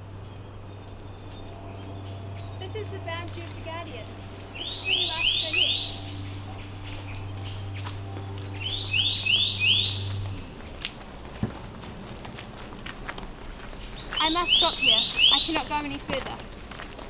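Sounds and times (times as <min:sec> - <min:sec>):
bird chirping: 0:00.0 - 0:16.8
low steady hum: 0:00.0 - 0:17.0.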